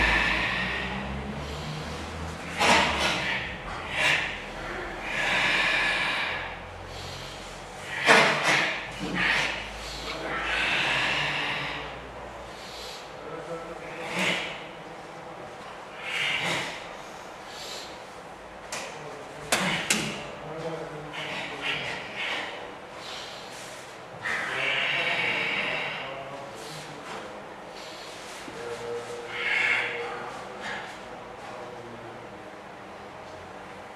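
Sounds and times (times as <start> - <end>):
people exhaling forcefully: 0.0 - 13.2, 15.9 - 18.2, 19.5 - 20.3, 21.1 - 28.5
movement sounds: 0.0 - 32.0
quiet breathing: 0.0 - 32.4.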